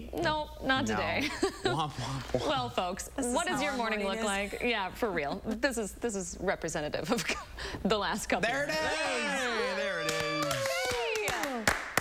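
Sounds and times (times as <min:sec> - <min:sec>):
hand claps: 0:10.0 - 0:12.0.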